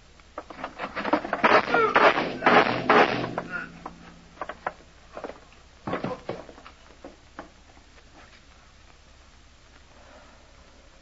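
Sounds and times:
slow footsteps: 0:00.0 - 0:10.1
low hum: 0:00.0 - 0:11.0.

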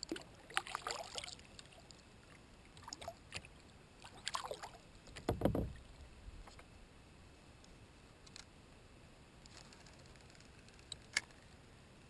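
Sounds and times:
paddle splashes and drips: 0:00.0 - 0:06.0
low thump: 0:05.2 - 0:05.8.

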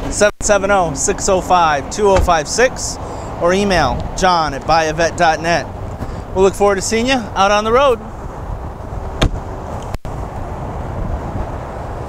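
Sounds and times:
wind buffeting microphone: 0:00.0 - 0:12.0
sharp knock: 0:09.2 - 0:09.4.

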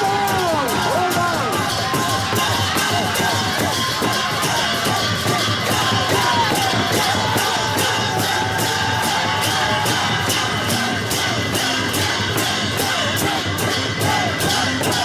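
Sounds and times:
barrel drums beaten in rhythm: 0:00.0 - 0:15.0
crowd cheering and shouting: 0:00.0 - 0:15.0.

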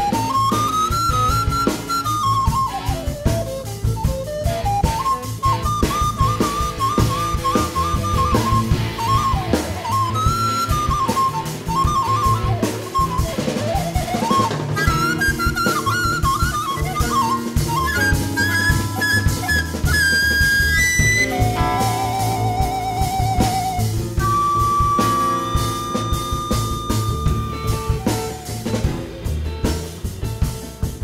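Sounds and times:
recorder melody: 0:00.0 - 0:30.1
drum kit: 0:00.0 - 0:31.0
electric guitar: 0:00.0 - 0:31.0
upright double bass: 0:17.8 - 0:31.0.

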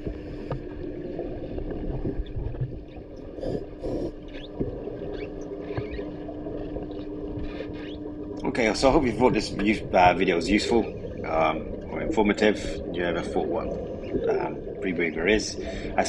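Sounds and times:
steady hum: 0:00.0 - 0:16.0
underwater rumble: 0:00.0 - 0:16.0.

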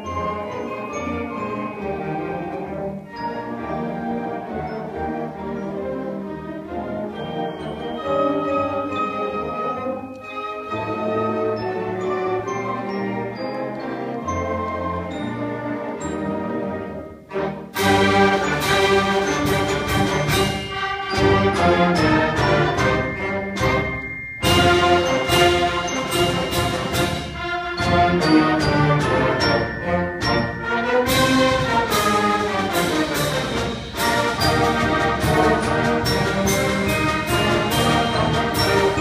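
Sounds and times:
concert band playing: 0:06.8 - 0:39.0
sharp percussion strikes: 0:17.9 - 0:39.0.

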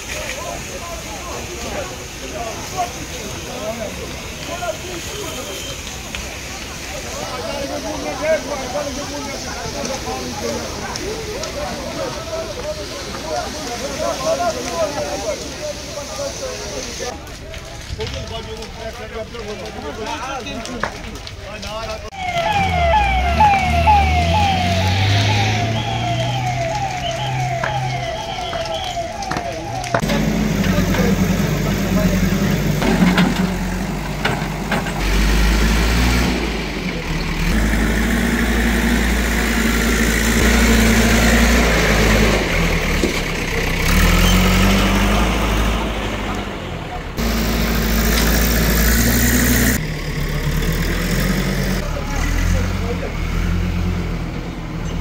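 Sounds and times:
low engine rumble: 0:20.6 - 0:50.8
emergency siren yelping: 0:22.1 - 0:31.6.

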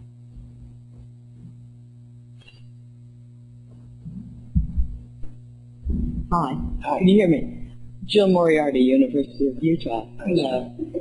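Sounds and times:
electrical mains hum: 0:00.0 - 0:11.0
microphone handling thumps: 0:00.2 - 0:01.7, 0:03.7 - 0:06.8.

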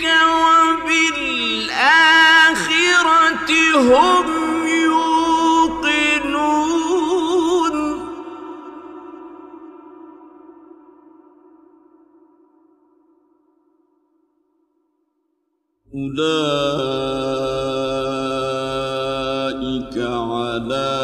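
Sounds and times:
man reciting melodically: 0:00.0 - 0:09.5, 0:15.9 - 0:21.0.

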